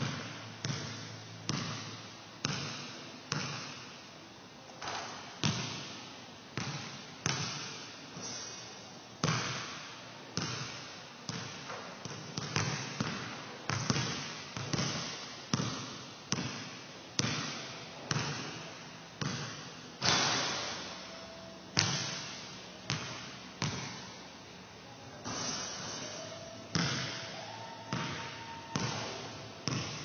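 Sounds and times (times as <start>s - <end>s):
ball striking the hoop: 0.0s - 3.8s, 4.8s - 6.0s, 9.2s - 21.0s, 21.8s - 24.0s, 25.2s - 27.3s, 27.9s - 30.0s
basketball bouncing on gym floor: 0.0s - 3.9s, 4.8s - 6.0s, 6.6s - 8.4s, 9.2s - 20.9s, 21.7s - 24.2s, 26.7s - 30.0s.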